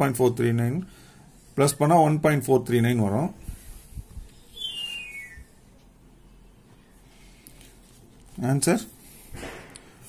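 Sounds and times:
falling whistle-like chirp: 4.5 - 5.6.

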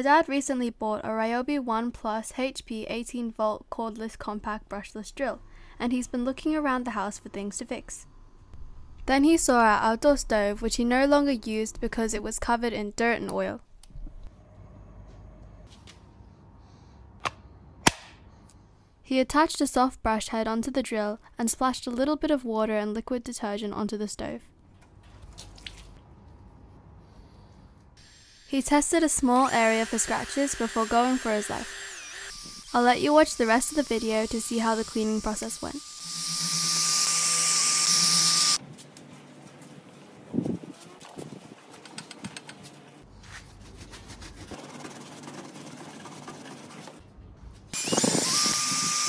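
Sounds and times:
drill motor whine: 29.4 - 38.6, 47.8 - 49.0
brush scrubbing wet metal: 43.2 - 47.0.

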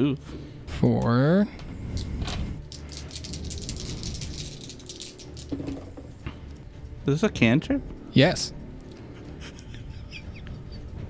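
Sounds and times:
dice rattling: 2.6 - 6.0.

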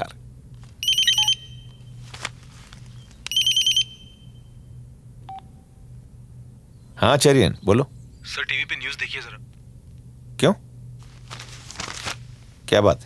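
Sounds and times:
phone ringing electronic trill: 0.8 - 1.8.

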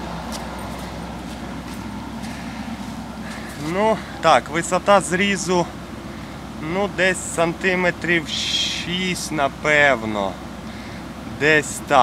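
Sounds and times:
combine harvester engine humming: 0.0 - 12.0.

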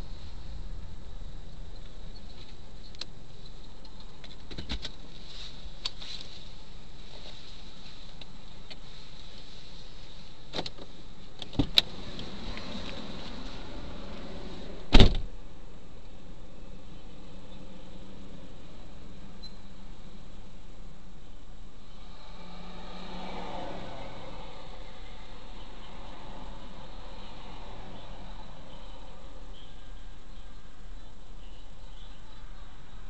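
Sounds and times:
car passing: 11.7 - 15.0, 21.8 - 30.2
car door clicks and knocks: 14.9 - 15.3
car door slamming: 14.9 - 15.3.

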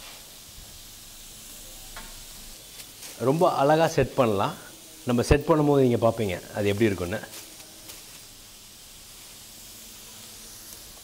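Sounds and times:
food sizzling on a grill plate: 0.0 - 11.0.

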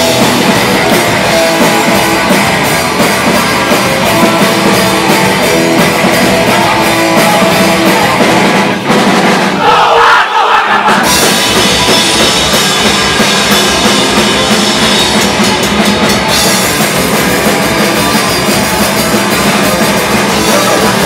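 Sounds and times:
punk band playing loud: 0.0 - 21.0.

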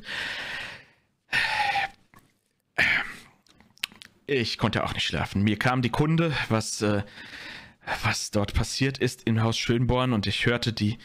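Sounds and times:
person sighing close to microphone: 1.3 - 2.0.

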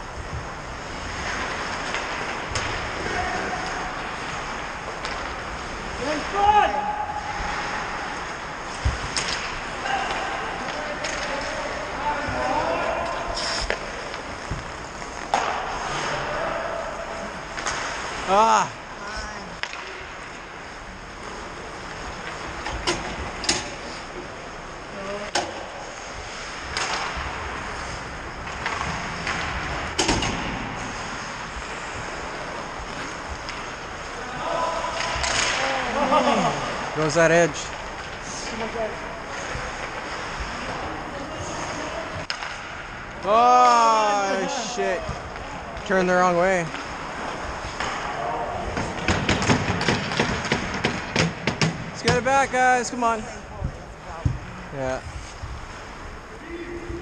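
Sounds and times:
ice rink din: 0.2 - 57.0
hockey sticks and puck cracking: 0.8 - 56.2
players shouting: 6.0 - 8.1, 9.7 - 13.8, 15.3 - 17.6, 43.2 - 46.0.

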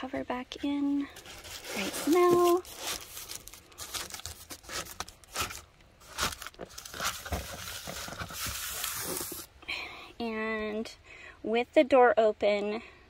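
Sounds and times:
foil insulation crinkling: 1.1 - 9.5.

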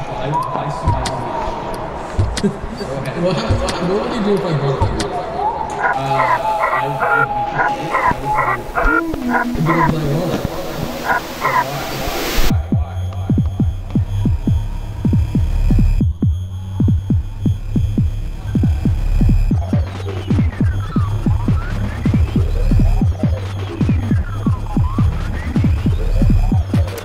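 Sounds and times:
heavy bass drone: 5.7 - 27.0.

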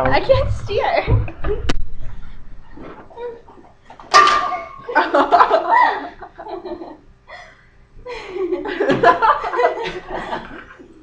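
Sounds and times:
people laughing: 4.8 - 7.0, 8.1 - 11.0.

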